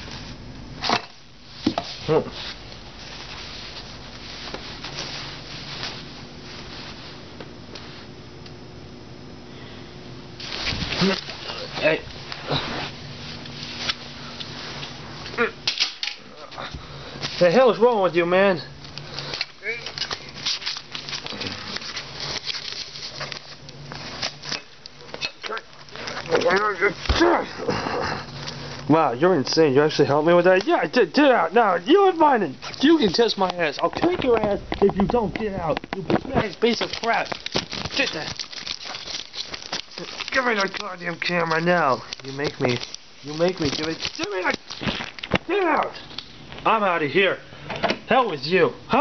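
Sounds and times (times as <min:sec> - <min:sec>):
plastic bag rustling: 0:01.4 - 0:08.1, 0:10.4 - 0:46.6.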